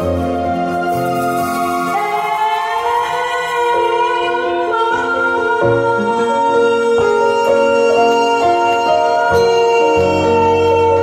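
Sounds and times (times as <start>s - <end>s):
bass: 0.0s - 11.0s
long sliding held note: 0.0s - 11.0s.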